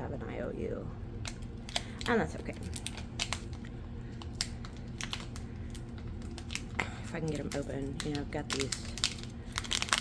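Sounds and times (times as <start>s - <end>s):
fingernails clicking on plastic package: 1.2s - 10.0s.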